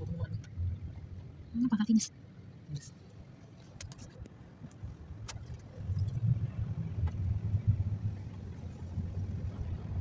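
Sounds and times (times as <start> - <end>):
vehicle rumble from inside cabin: 0.0 - 10.0.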